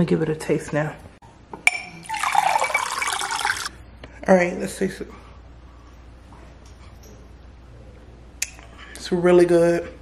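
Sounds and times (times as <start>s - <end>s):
water pouring into glass with ice: 2.0s - 3.7s.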